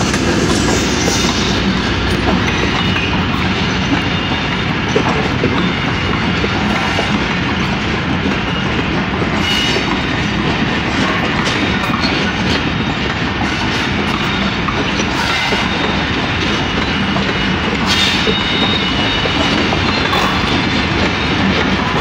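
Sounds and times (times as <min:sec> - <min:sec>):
clickety-clack over rail joints: 0:00.0 - 0:22.0
train wheels rumbling on rails: 0:00.0 - 0:22.0
high wheel squeal: 0:00.5 - 0:04.8, 0:11.9 - 0:22.0.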